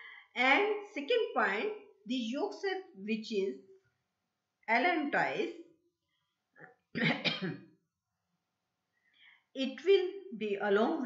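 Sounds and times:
woman clearing throat: 7.0 - 7.6.

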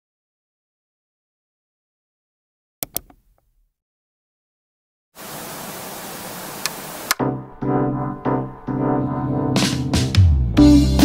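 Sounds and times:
tv static hiss: 5.2 - 7.2.

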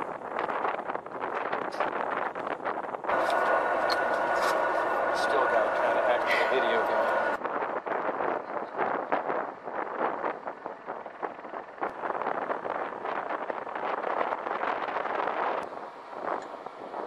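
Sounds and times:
wind buffeting microphone: 0.0 - 17.0
indistinct voices: 3.1 - 7.4
steady tone: 3.1 - 7.4.

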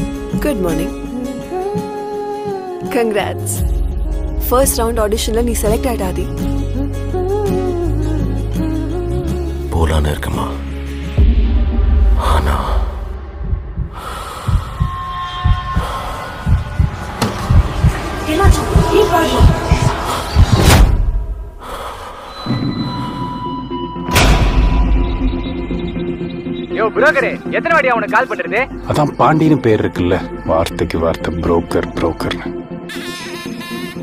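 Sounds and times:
soft background music: 0.0 - 11.2, 23.0 - 34.0
low hum: 10.9 - 21.7
deep irregular thumps: 11.2 - 21.5.

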